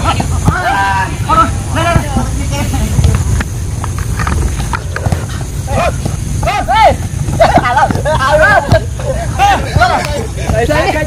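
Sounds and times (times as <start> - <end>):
ball being kicked: 0.0 - 1.0, 1.7 - 11.0
players shouting: 0.0 - 3.2, 4.6 - 11.0.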